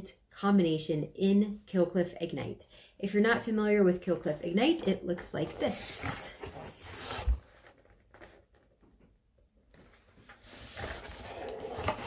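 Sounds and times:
cardboard rustling: 0:04.8 - 0:08.9, 0:09.7 - 0:12.0
cardboard box rubbing: 0:05.5 - 0:08.3, 0:10.5 - 0:12.0.

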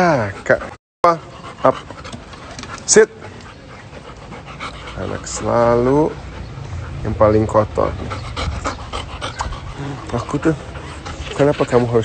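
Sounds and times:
dog panting softly: 0:00.0 - 0:12.0.

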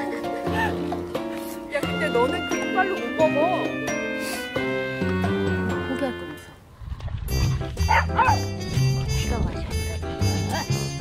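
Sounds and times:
soft background music: 0:00.0 - 0:06.6
dog barking in short yelps: 0:07.9 - 0:08.4.

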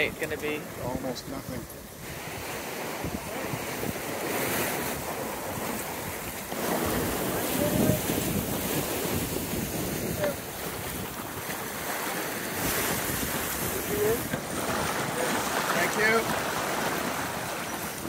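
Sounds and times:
water rushing past hull: 0:00.0 - 0:18.0
wind buffeting microphone: 0:00.0 - 0:18.0.

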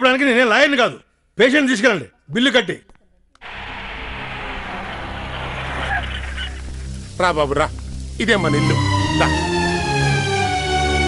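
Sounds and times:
car engine running: 0:03.4 - 0:07.1.

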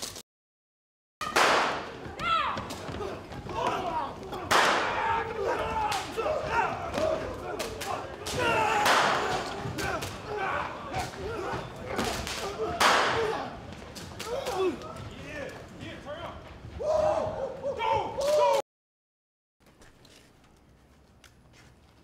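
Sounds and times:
people shouting and crying: 0:01.3 - 0:15.5, 0:16.7 - 0:18.6.

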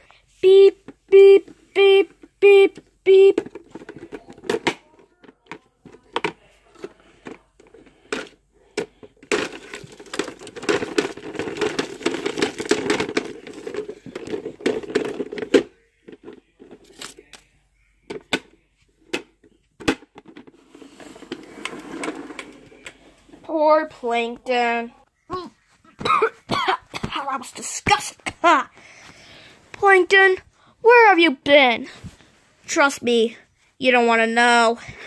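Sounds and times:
crumpled paper crinkling: 0:09.3 - 0:15.4, 0:16.8 - 0:17.5.

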